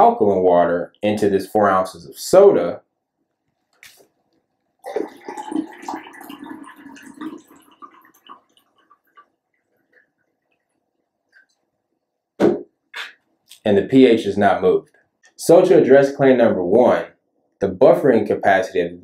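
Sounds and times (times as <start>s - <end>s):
water pouring into glass: 4.8s - 10.7s
faint water drips: 4.8s - 11.8s.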